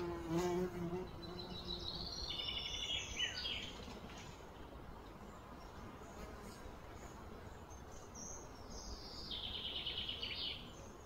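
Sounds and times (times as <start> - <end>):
flying insect buzzing: 0.0 - 2.0.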